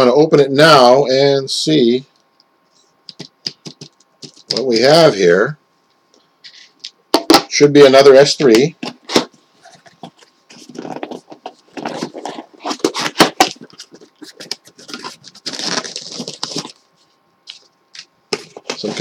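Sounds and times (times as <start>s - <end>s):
tape and cardboard crackling: 8.6s - 19.0s.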